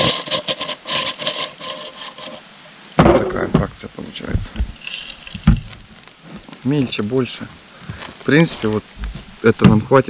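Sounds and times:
bait grinder crunching and rattling: 0:04.8 - 0:06.0.

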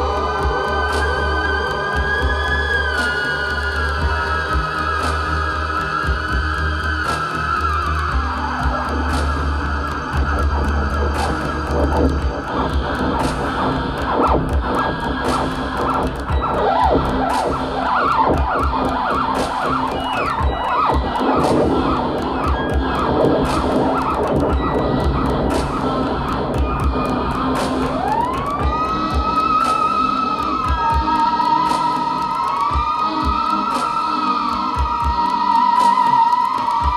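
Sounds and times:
low drone: 0:00.0 - 0:36.9
rapid clicking ticks: 0:00.0 - 0:36.9
wavering theremin music: 0:00.0 - 0:36.9.

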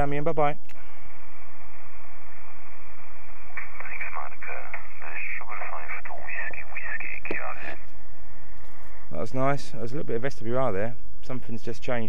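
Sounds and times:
radio band-noise hiss: 0:00.1 - 0:12.0.

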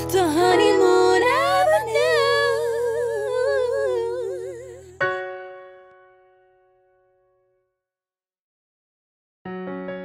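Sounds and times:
wordless vocal with vibrato: 0:00.0 - 0:05.2.

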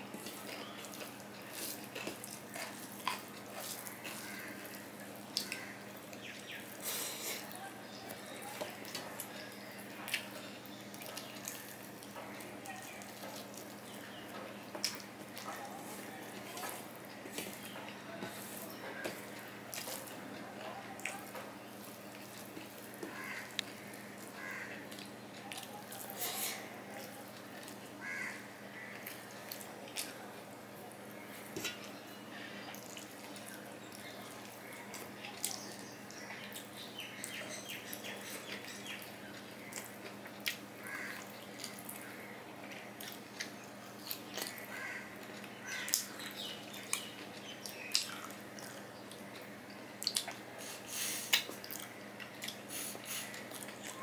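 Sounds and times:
wet chewing and lip smacking: 0:00.1 - 0:06.8, 0:32.7 - 0:54.0
fingers squishing rice on a plate: 0:00.1 - 0:36.7.

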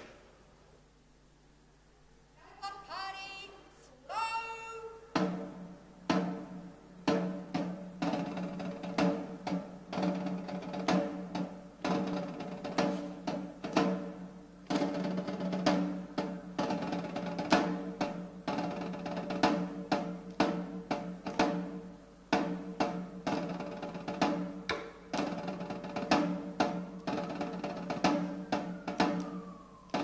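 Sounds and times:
snare drum beating a slow march: 0:00.0 - 0:00.3, 0:05.1 - 0:30.0.

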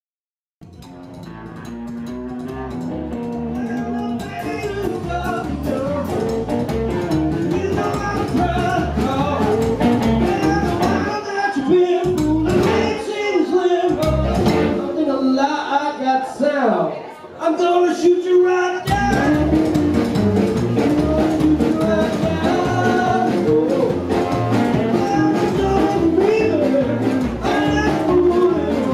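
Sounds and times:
rockabilly band playing: 0:00.6 - 0:16.4, 0:17.8 - 0:28.9
man singing: 0:03.4 - 0:06.5, 0:07.3 - 0:16.8, 0:17.4 - 0:28.9.

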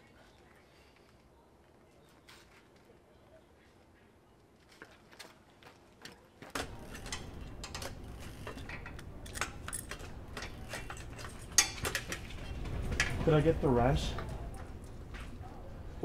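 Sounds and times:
low outdoor background: 0:00.0 - 0:16.0.

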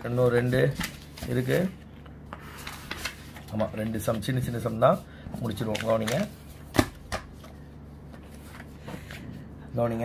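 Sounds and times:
paper pages rustling: 0:00.0 - 0:01.8, 0:02.5 - 0:09.2.

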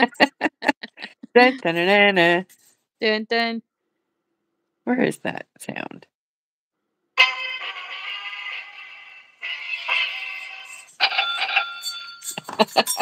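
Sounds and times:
bell-like chime notes: 0:09.9 - 0:13.0.

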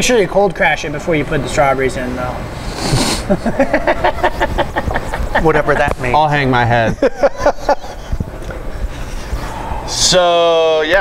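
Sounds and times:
men laughing: 0:02.9 - 0:09.8.

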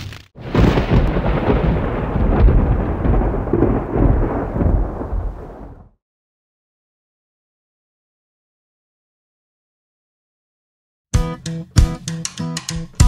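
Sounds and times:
deep thunder-like rumbling: 0:00.4 - 0:06.0.

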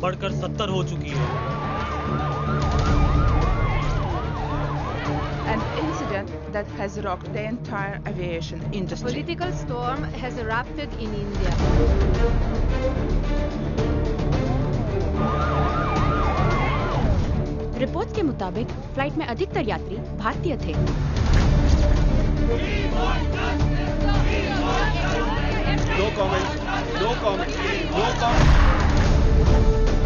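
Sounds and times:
siren yelping: 0:01.3 - 0:06.3, 0:15.2 - 0:17.1
steady dropping siren tone: 0:01.5 - 0:06.2.

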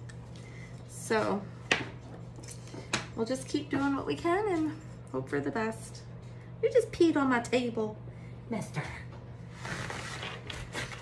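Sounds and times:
steady low hum: 0:00.0 - 0:11.0
paper towel rustling: 0:09.5 - 0:11.0.

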